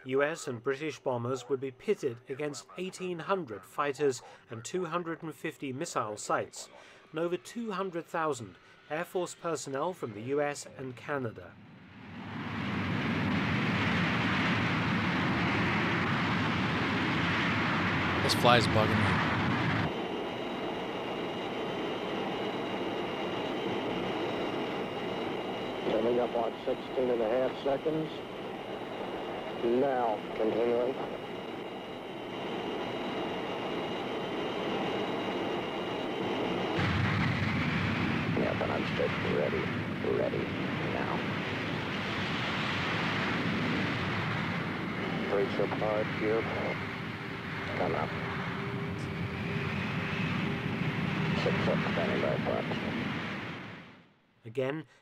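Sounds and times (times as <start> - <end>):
jet engines rushing: 1.9 - 54.1
high thin engine whines: 11.6 - 54.1.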